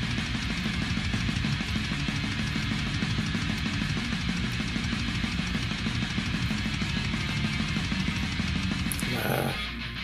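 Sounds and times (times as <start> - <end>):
electric guitar riff: 1.0 - 10.0.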